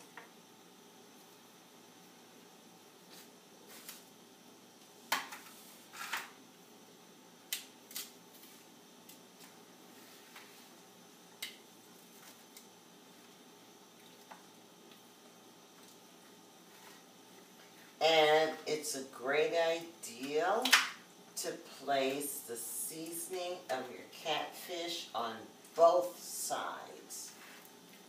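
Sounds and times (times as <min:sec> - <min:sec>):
faint room noise: 0:00.0 - 0:28.0.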